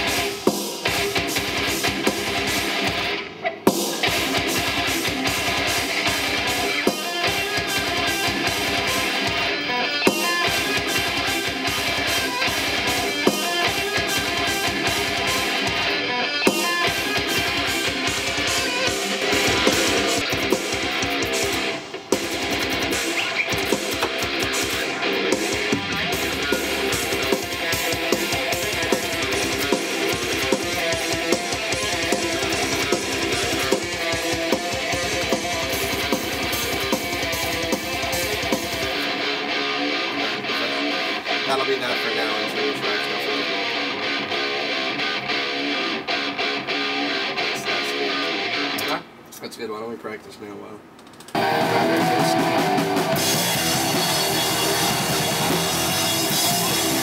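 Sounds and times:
heavy metal electric guitar riffing: 0.0 - 49.2, 51.4 - 57.0.

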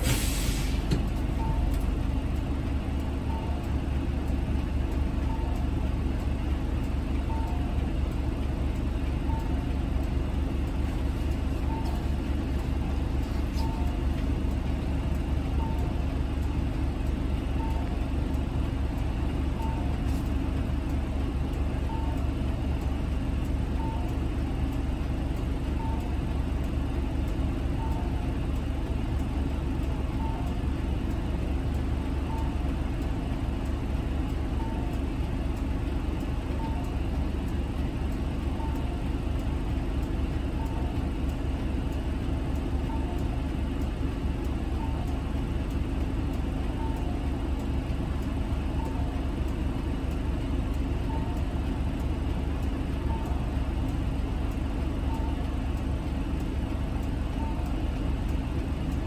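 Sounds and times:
bus diesel engine idling: 0.0 - 59.0
two-tone electronic beep: 1.4 - 1.8, 11.6 - 12.0, 13.6 - 14.0, 15.6 - 16.0, 32.3 - 32.6, 42.9 - 43.2, 46.8 - 47.2, 51.1 - 51.4, 53.0 - 53.4.

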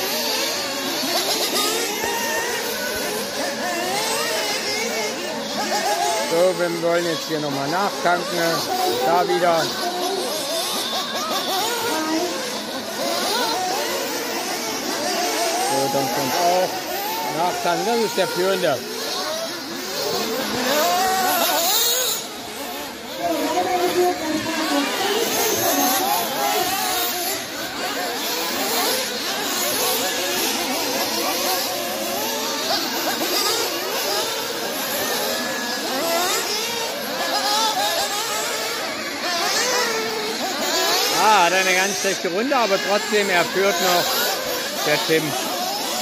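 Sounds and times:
small engines revving: 0.0 - 46.0.

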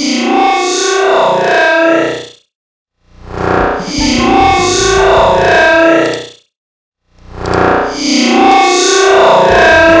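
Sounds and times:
rough low buzz: 3.1 - 5.8
distorted electronic tones: 3.2 - 6.3, 8.6 - 10.0.

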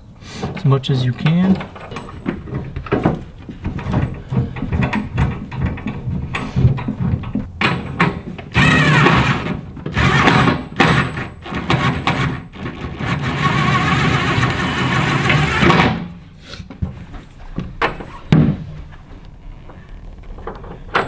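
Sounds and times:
cordless drill running: 8.6 - 10.5, 13.0 - 15.7.

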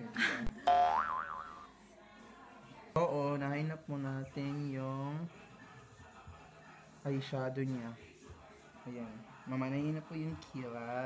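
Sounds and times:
wobbling boing tone: 0.7 - 1.6.

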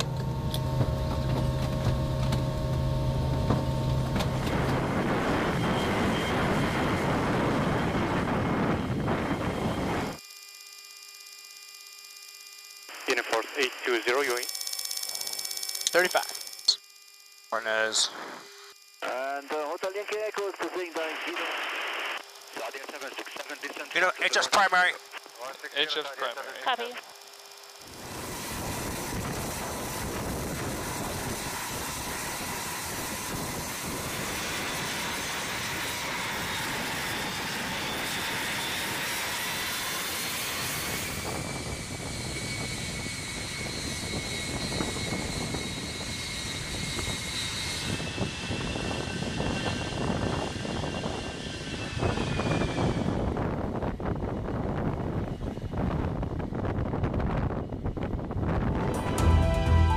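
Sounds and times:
jet engines running: 0.0 - 10.2, 12.9 - 16.8, 17.5 - 59.9.

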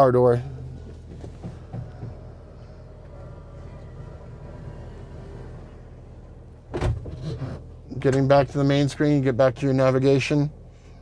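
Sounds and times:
steady low hum: 0.0 - 11.0
sliding door motor running: 1.5 - 6.5
door thudding shut: 6.7 - 7.2.

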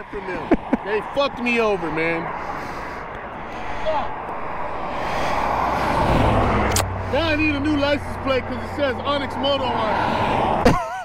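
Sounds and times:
highway traffic rushing past: 0.0 - 11.0.

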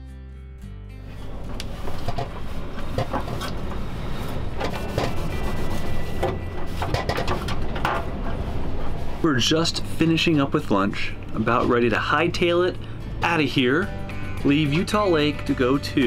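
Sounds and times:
cloth rag scrubbing stovetop: 1.1 - 9.3
steady low rumble: 1.2 - 14.7.

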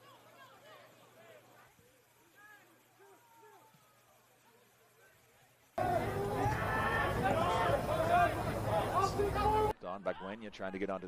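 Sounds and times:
distant voices shouting: 5.8 - 9.7.

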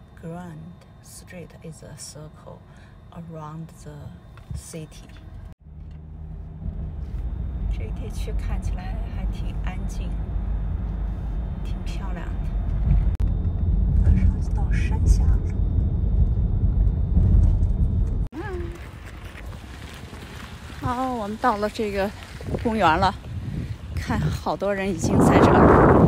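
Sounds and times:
car driving rumble: 3.0 - 26.0.

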